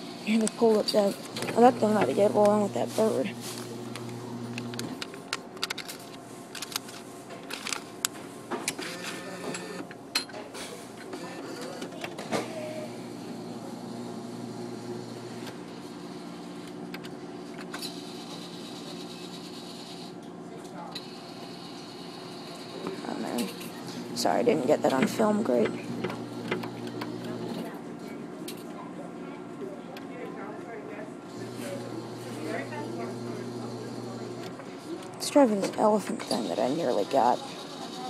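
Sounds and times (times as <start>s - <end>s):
claw machine motor hum: 0.0s - 5.5s, 11.2s - 20.2s, 21.0s - 27.8s, 31.3s - 38.0s
clicks and clatters: 3.6s - 8.9s.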